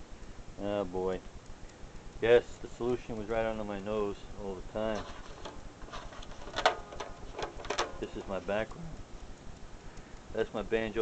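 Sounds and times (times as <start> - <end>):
paper rustling and crinkling: 4.9 - 8.4.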